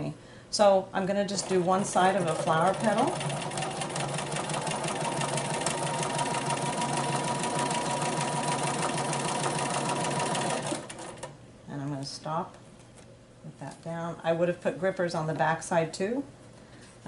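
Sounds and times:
sewing machine stitching: 1.4 - 11.3.

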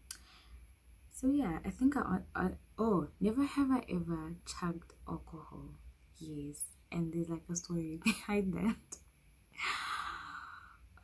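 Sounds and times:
woman sighing: 9.6 - 10.7.

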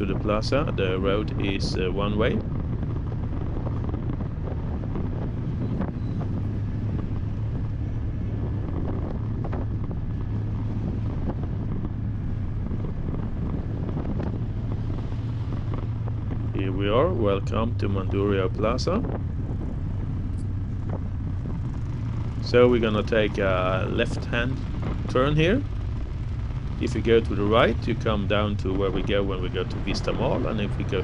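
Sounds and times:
car engine and road hum: 0.0 - 31.0.

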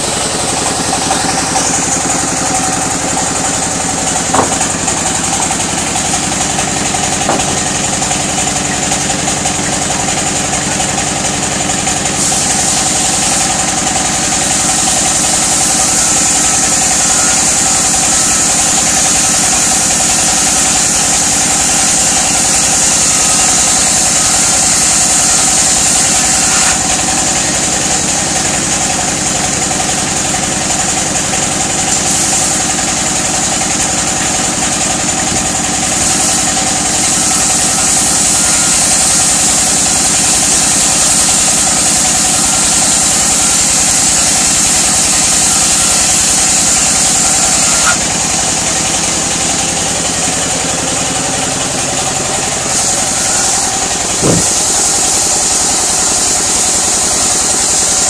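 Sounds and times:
band saw running: 0.0 - 58.0
saw cutting wood plank: 0.0 - 58.0
stationary engine running: 0.0 - 58.0.

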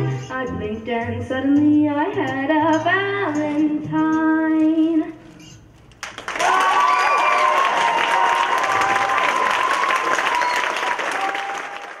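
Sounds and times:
audience applauding and cheering: 6.0 - 12.0
high whoops: 6.4 - 12.0.

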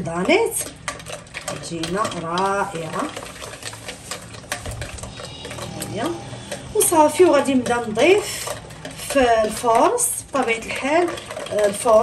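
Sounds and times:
whisk stirring batter: 0.0 - 12.0.

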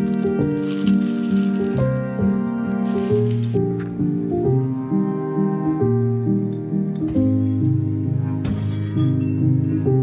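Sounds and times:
melodic background music: 0.0 - 10.0.

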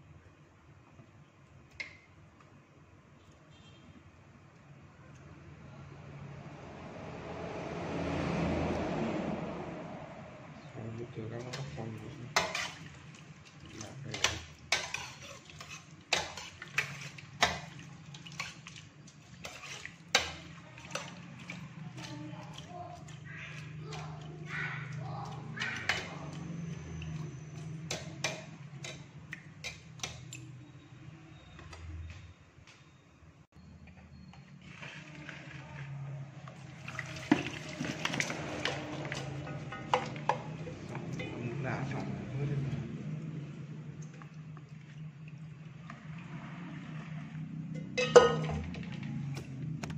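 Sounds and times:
utensils clinking against steel pot: 11.4 - 13.0, 13.8 - 22.1, 24.8 - 30.5, 37.4 - 41.4, 47.7 - 49.1.

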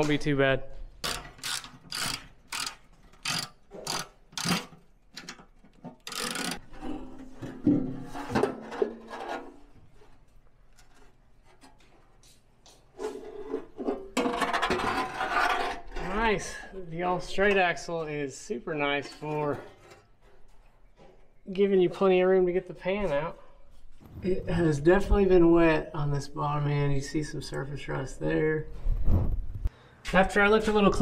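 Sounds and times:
socket ratchet clicking: 1.0 - 4.6
metal scraping and clatter: 1.0 - 12.2, 12.9 - 16.6.

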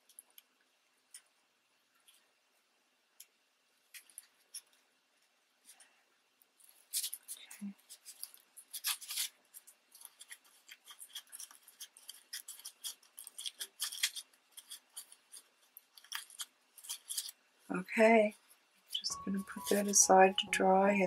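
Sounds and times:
paper crinkling and rustling: 6.5 - 20.0.

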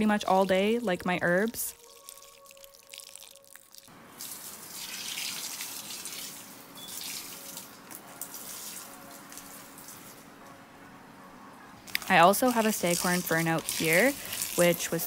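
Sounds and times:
water pouring into soil: 1.3 - 10.0, 12.0 - 15.0.

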